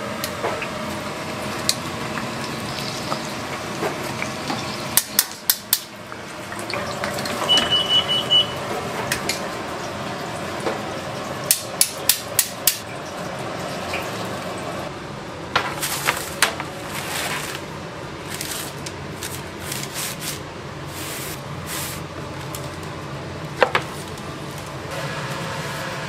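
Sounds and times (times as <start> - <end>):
oil sizzling in a deep fryer: 0.0 - 15.2, 24.0 - 26.0
high electronic beeps: 7.5 - 8.6.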